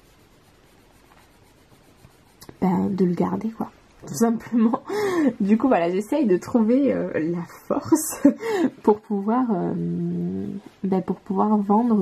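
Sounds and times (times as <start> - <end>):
coloured pencil scratching on paper: 0.0 - 3.7, 5.5 - 12.0.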